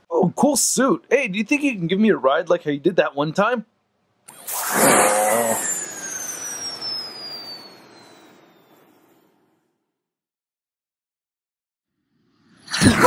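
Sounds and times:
jet flyby whistle: 4.4s - 9.3s
person laughing: 12.8s - 13.0s.

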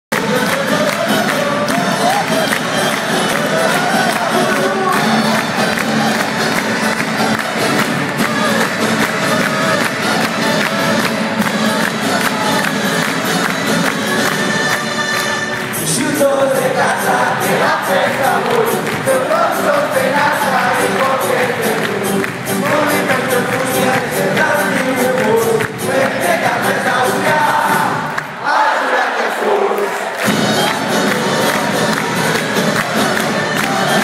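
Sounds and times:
crowd cheering and singing along: 0.1s - 34.0s
acoustic band playing: 0.2s - 28.0s
choir singing: 14.3s - 22.0s, 25.9s - 34.0s.

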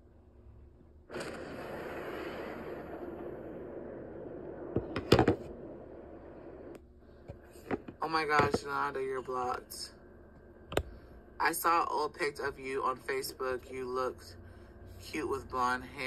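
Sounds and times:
steady rushing noise: 1.1s - 8.7s.

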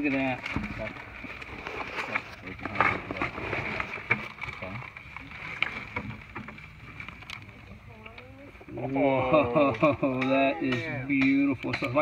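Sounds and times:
hand tool scraping rock: 0.0s - 6.0s.

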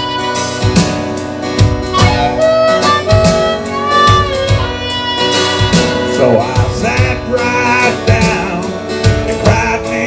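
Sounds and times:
harmonica solo: 0.0s - 7.4s
drum machine beat: 0.0s - 10.0s
strummed acoustic guitar: 0.0s - 10.0s.

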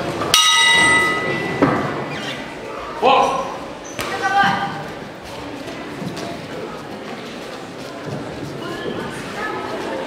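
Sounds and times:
boxing ring bell ringing: 0.4s - 1.7s.

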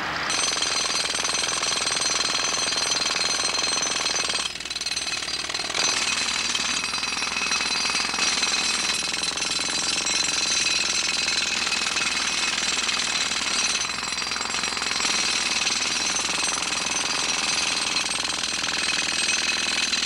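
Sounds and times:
pneumatic hammer chipping concrete: 0.0s - 20.0s.

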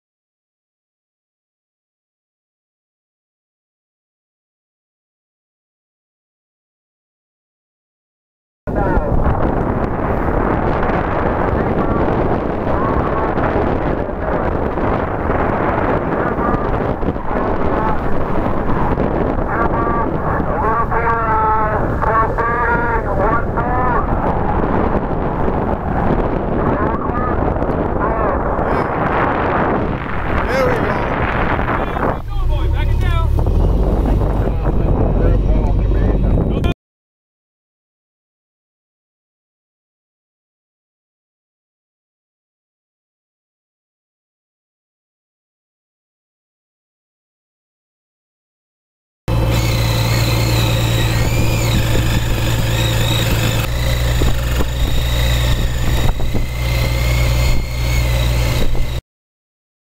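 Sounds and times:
boat engine rumble: 8.7s - 36.7s, 49.3s - 59.0s
wind buffeting microphone: 8.7s - 36.7s, 49.3s - 59.0s
boat engine idling: 49.3s - 59.0s
power tool whine cutting fish: 49.3s - 59.0s.

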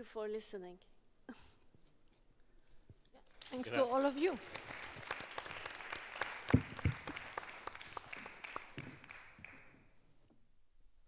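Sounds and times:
audience applauding: 3.4s - 10.0s.

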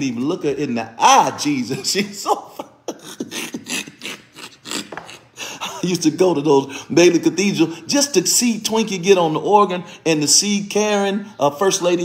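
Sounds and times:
man laughing wheezily: 2.3s - 5.9s.

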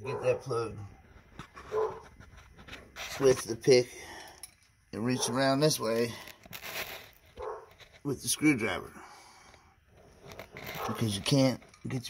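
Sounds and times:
light handling rustling: 9.5s - 12.0s.

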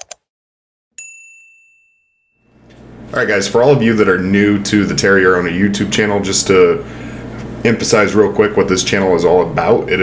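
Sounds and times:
notification bell ding: 1.0s - 2.6s.

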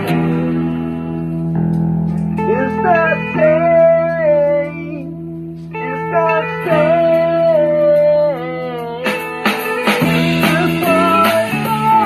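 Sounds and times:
sliding guitar melody: 0.0s - 12.0s.

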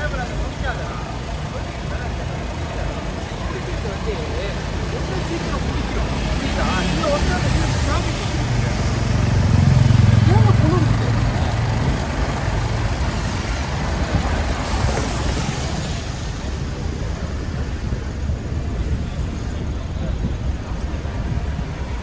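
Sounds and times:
bus engine humming: 0.0s - 22.0s
passers-by talking: 0.0s - 22.0s
vehicles going by: 0.0s - 22.0s.

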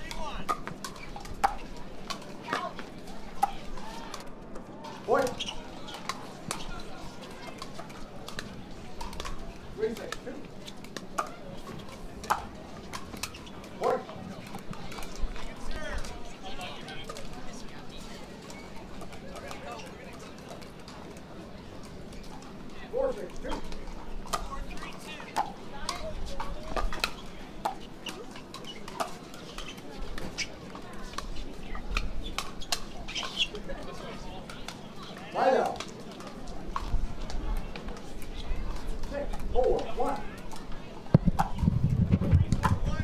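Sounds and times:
murmur of spectators: 0.0s - 43.0s.

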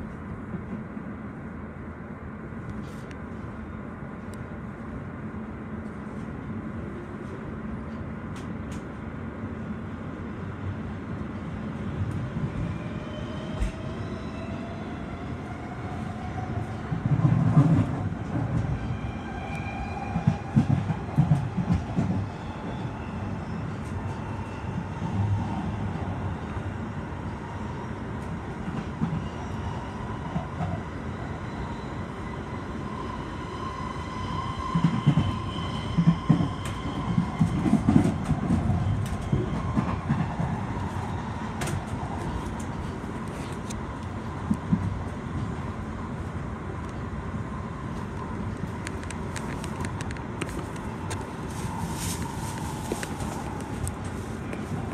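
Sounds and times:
train wheels rumbling on rail: 2.7s - 54.9s.

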